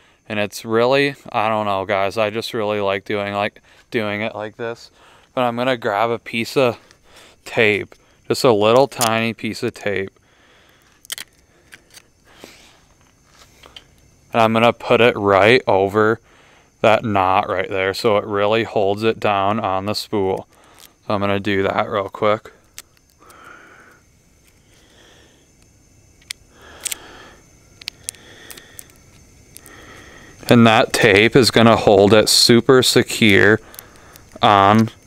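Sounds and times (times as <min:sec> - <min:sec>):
person breathing through the nose: 0:04.9 - 0:05.4, 0:06.9 - 0:07.4, 0:10.2 - 0:13.8, 0:16.2 - 0:16.8, 0:20.5 - 0:21.0, 0:23.1 - 0:25.6, 0:26.5 - 0:30.4, 0:33.6 - 0:34.4
fishing reel clicks: 0:26.2 - 0:27.0.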